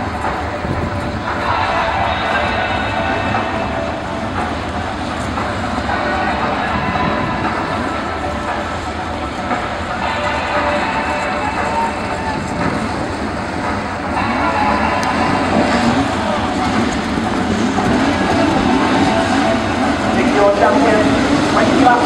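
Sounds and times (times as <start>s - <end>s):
stock car engines racing: 0.0s - 22.0s.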